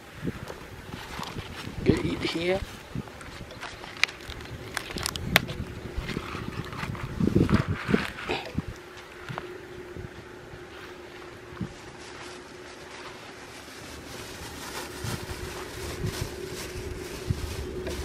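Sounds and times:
wind noise on microphone: 0.0s - 10.8s, 11.4s - 12.0s, 13.8s - 18.0s
low droning hum: 0.0s - 18.0s
cloth brushing microphone: 5.9s - 8.7s, 11.6s - 18.0s.

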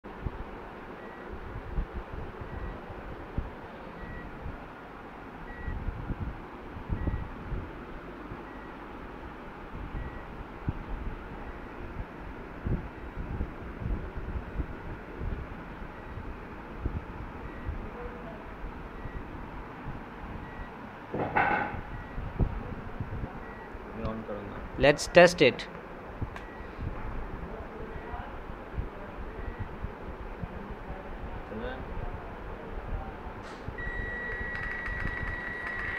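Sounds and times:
faint short electronic beeps: 33.8s - 35.9s.

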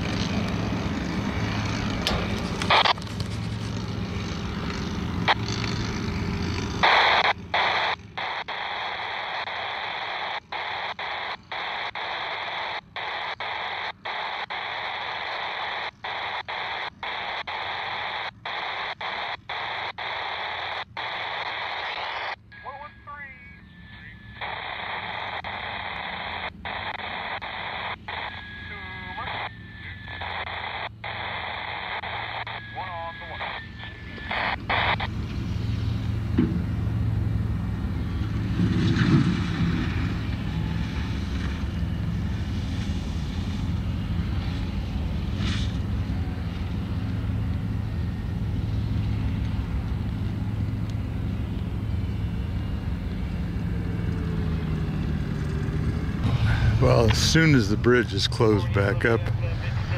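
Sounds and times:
radio scanner static hiss: 0.0s - 59.9s
garbled warbling transmission: 6.5s - 36.0s, 56.2s - 59.9s.

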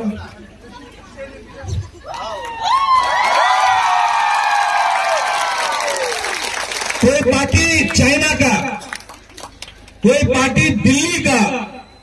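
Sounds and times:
crowd cheering and shouting: 2.1s - 6.4s
clapping: 2.4s - 7.0s, 8.9s - 10.0s.

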